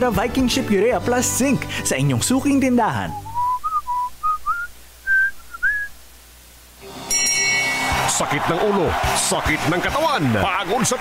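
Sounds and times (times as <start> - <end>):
person whistling a tune: 3.1 - 5.9
bright sustained tone: 6.8 - 8.0.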